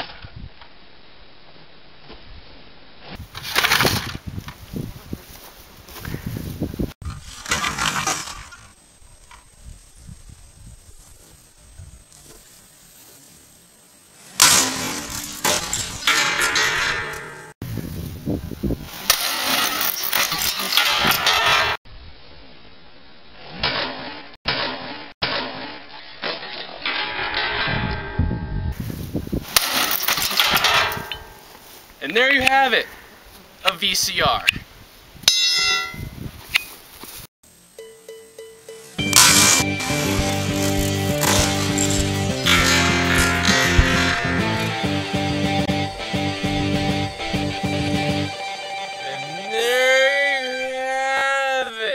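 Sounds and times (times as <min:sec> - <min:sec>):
sledgehammer smashing plastic: 0:14.4 - 0:16.6.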